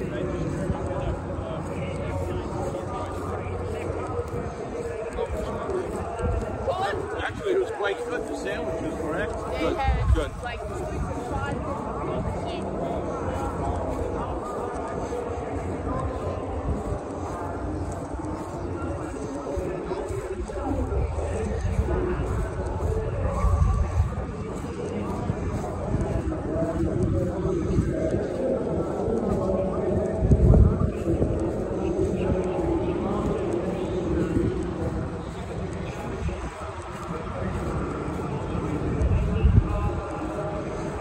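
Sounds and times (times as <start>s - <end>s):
background voices: 0.0s - 41.0s
people talking in background: 0.0s - 41.0s
steady low rumble: 0.0s - 41.0s
wind buffeting microphone: 0.0s - 41.0s.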